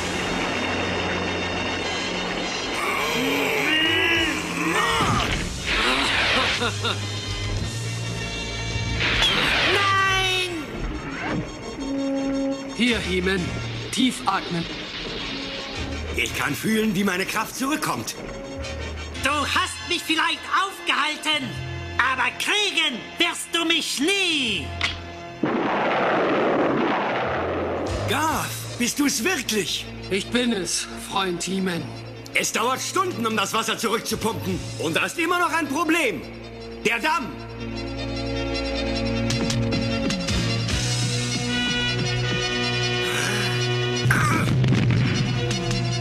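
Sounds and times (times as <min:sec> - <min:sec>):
dramatic background music: 0:00.0 - 0:46.0
men grunting and crying out: 0:02.7 - 0:07.2, 0:42.9 - 0:44.7.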